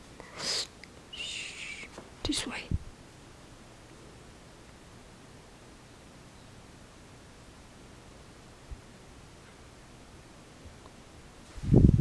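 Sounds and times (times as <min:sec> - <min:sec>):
person whispering: 0:01.2 - 0:02.8.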